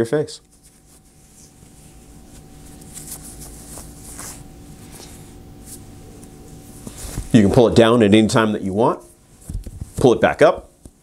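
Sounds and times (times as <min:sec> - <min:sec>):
faint steady hum: 0:00.0 - 0:11.0
fabric head wrap rustling: 0:00.4 - 0:07.8.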